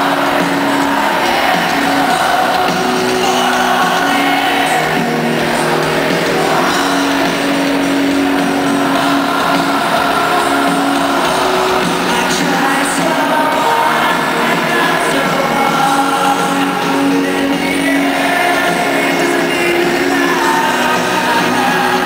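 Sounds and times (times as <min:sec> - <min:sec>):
live rock band playing: 0:00.0 - 0:22.0
man singing long notes: 0:00.0 - 0:22.0.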